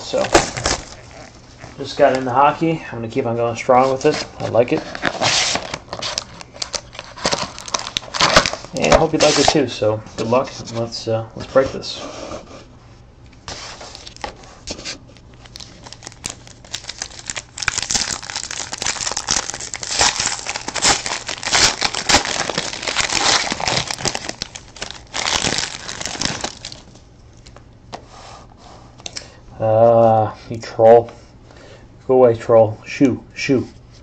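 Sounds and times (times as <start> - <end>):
card wrapper crinkling: 0.1 - 2.2, 3.8 - 9.6, 15.2 - 27.6.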